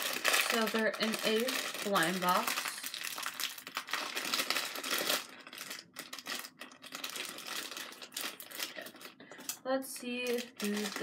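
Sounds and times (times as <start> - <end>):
packaging crinkling and rustling: 0.0 - 11.0.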